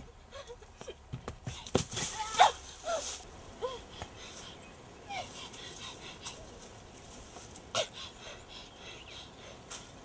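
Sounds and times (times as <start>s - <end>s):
running footsteps on rocky ground: 0.8s - 2.4s
rustle of brush: 1.7s - 7.8s, 9.6s - 10.0s.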